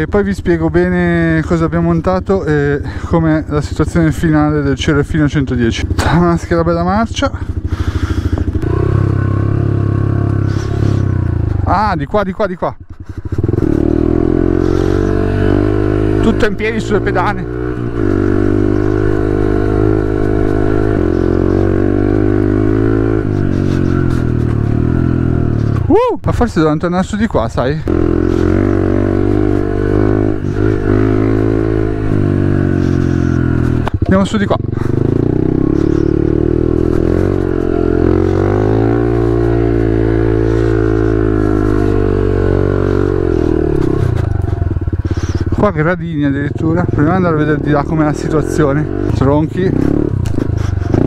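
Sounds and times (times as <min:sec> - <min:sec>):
motorcycle engine under throttle: 0:00.0 - 0:25.9, 0:26.9 - 0:51.0.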